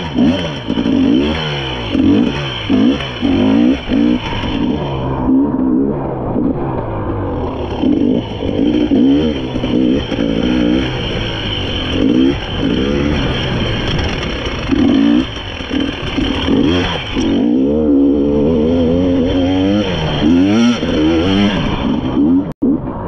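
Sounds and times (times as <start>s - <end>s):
dirt bike engine revving: 0.0s - 23.0s.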